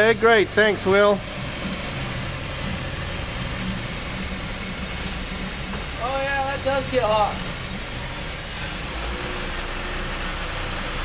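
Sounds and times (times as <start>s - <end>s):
even hiss: 0.0s - 11.0s
low mechanical hum: 0.0s - 11.0s.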